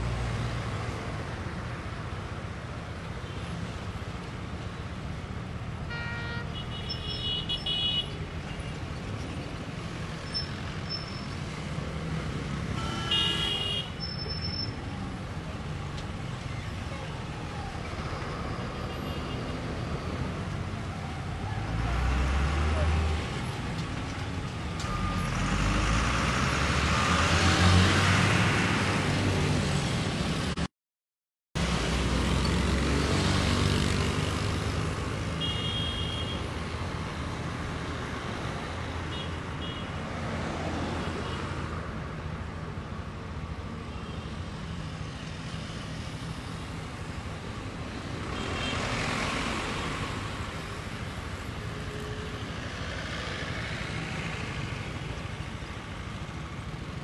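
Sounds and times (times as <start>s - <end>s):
vehicle engines and tyre noise: 0.0s - 30.7s, 31.6s - 57.0s.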